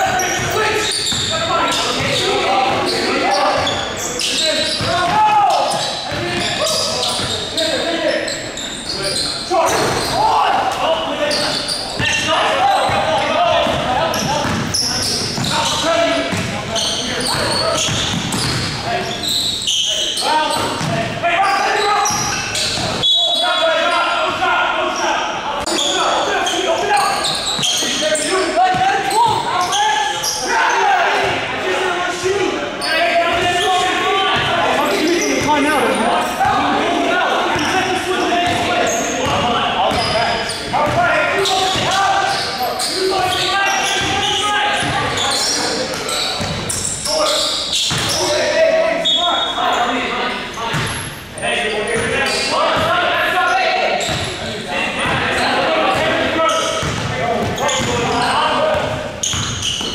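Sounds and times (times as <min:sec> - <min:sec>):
players calling out: 0:00.0 - 0:59.9
basketball bouncing on hardwood: 0:13.6 - 0:14.7.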